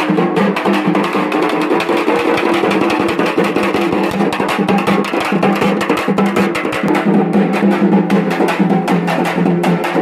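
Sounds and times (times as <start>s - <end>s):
frame drums beaten with sticks: 0.0s - 10.0s.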